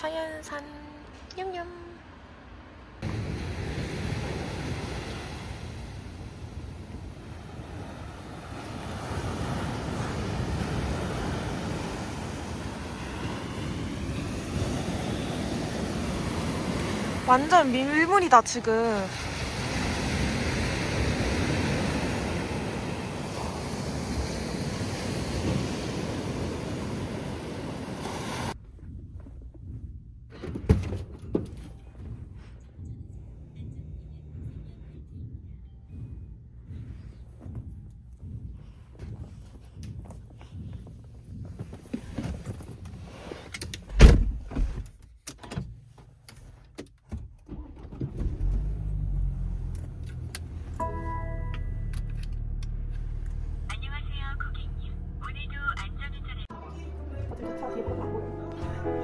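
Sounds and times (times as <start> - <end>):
waves washing on sandy beach: 3.0 - 28.6
car engine running: 47.5 - 56.4.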